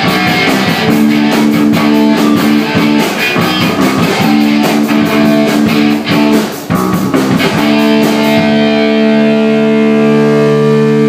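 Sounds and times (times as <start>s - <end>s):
distorted electric guitar chords: 0.0s - 11.0s.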